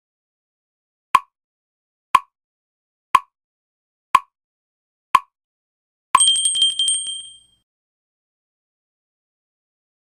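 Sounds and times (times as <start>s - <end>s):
bell strike and ringing trill: 6.2s - 7.5s.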